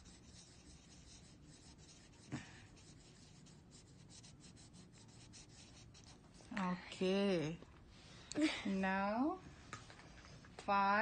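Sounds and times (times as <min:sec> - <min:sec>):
marker scribbling on paper: 0:00.0 - 0:06.6.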